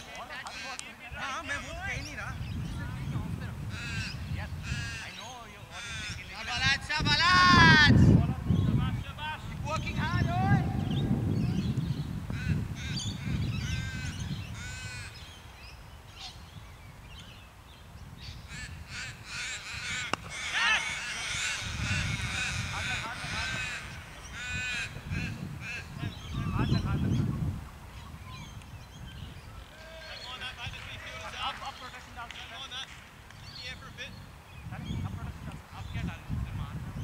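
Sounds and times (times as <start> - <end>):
wind rumbling on microphone: 0.0 - 32.3, 32.9 - 37.0
birds calling: 0.0 - 36.7.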